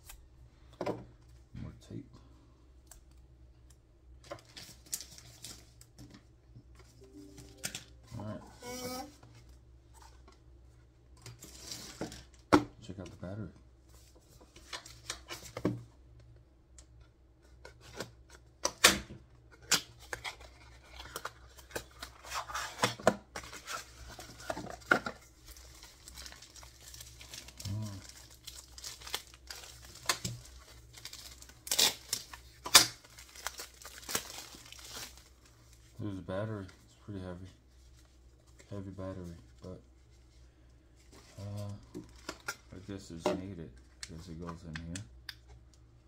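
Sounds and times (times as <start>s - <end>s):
plastic film crinkling: 25.3s - 35.9s.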